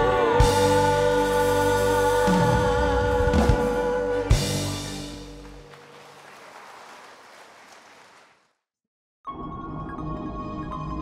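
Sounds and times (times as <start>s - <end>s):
audience applauding: 4.3s - 8.6s.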